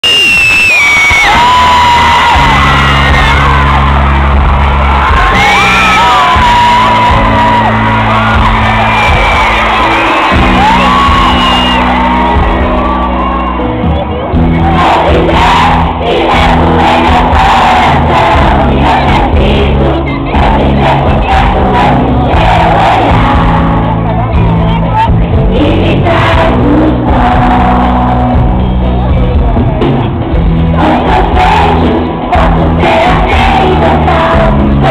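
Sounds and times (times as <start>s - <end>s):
fans screaming: 0.0s - 30.0s
live pop concert music: 0.0s - 34.9s
person singing: 14.5s - 29.6s, 30.7s - 34.9s.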